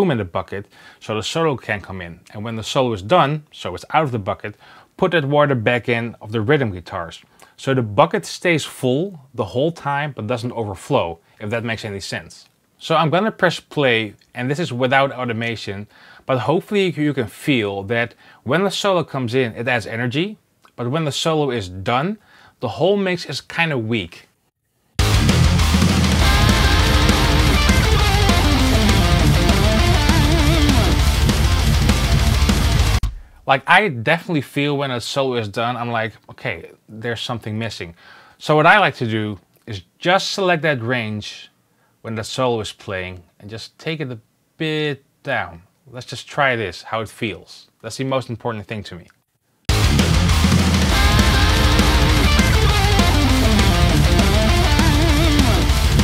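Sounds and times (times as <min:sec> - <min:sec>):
lead guitar solo: 0:25.0 - 0:33.2, 0:49.7 - 0:56.0
bass and drums: 0:25.0 - 0:33.6, 0:49.7 - 0:56.0
distorted rhythm guitars: 0:25.0 - 0:33.6, 0:49.7 - 0:56.0.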